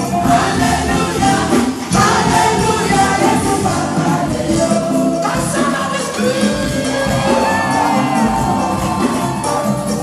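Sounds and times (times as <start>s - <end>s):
live praise music with singers: 0.0s - 10.0s
crowd cheering and whooping: 6.8s - 10.0s.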